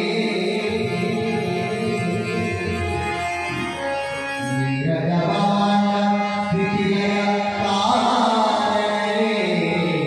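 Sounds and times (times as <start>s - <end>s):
men singing devotional chant: 0.0s - 2.6s, 4.9s - 10.0s
harmonium notes: 0.0s - 10.0s.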